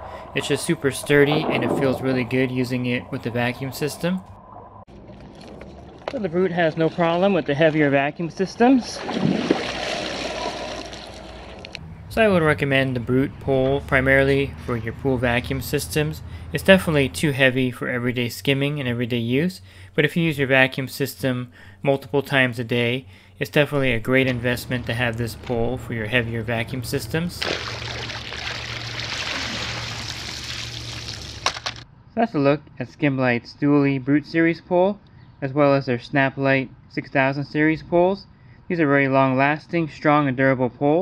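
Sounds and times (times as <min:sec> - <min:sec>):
low hum: 0:00.0 - 0:06.6, 0:10.2 - 0:31.8
water pouring and splashing: 0:08.8 - 0:11.8, 0:26.2 - 0:31.8.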